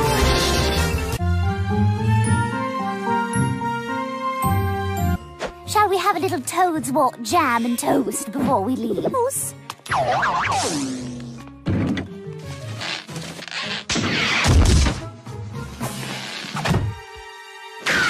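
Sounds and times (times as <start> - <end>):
cartoon music: 7.3 - 11.4
sudden thuds and knocks: 11.6 - 12.2.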